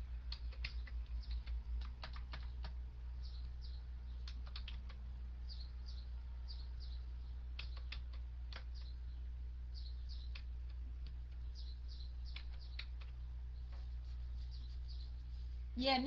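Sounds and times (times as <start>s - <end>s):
low electrical hum: 0.0s - 16.0s
keyboard typing clicks: 0.3s - 2.8s, 4.2s - 5.0s, 7.5s - 9.0s, 12.3s - 13.2s.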